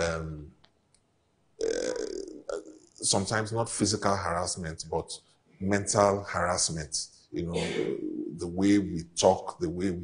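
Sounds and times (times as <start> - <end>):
man speaking: 0.0 - 0.5, 1.6 - 10.0
man's low throaty hesitation sound: 7.6 - 8.5.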